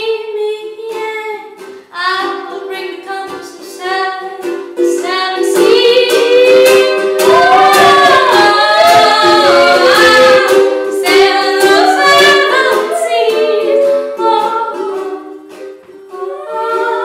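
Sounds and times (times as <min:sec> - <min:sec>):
ukulele strumming: 0:00.0 - 0:17.0
woman singing: 0:00.0 - 0:17.0.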